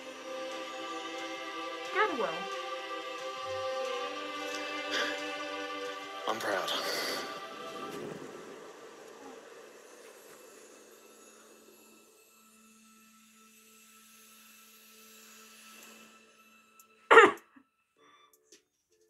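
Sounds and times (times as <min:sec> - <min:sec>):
faint steady tones: 0:00.0 - 0:17.1
loud short cough: 0:17.1 - 0:17.5.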